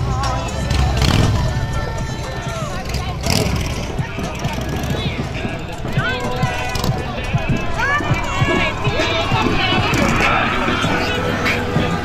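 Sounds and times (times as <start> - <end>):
spectators' voices and calls: 0.0 - 12.0
utility vehicle engine running: 0.0 - 12.0.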